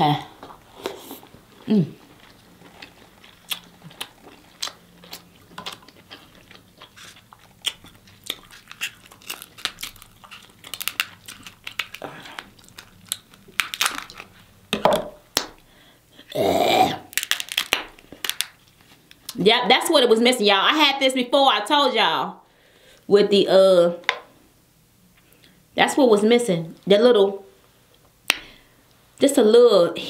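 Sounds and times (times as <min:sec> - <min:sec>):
chewing and smacking: 0:00.5 - 0:14.5
crab shells cracking: 0:02.3 - 0:14.4, 0:17.0 - 0:19.3.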